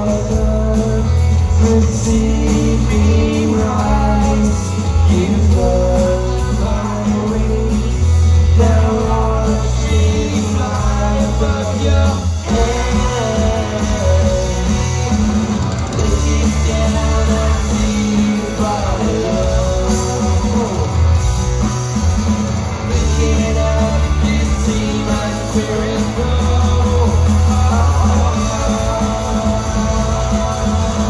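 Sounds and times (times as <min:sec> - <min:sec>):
person singing: 0:00.0 - 0:15.2, 0:15.9 - 0:21.2, 0:22.9 - 0:31.0
live rock band playing loud: 0:00.0 - 0:31.0.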